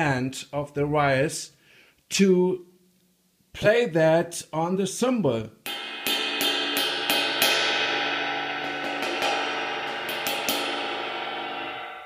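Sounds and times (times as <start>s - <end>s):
cymbal ringing wash: 5.7s - 12.0s.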